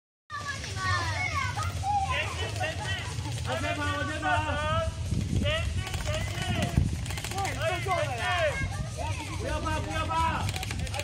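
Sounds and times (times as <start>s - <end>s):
children shouting: 0.3s - 3.2s.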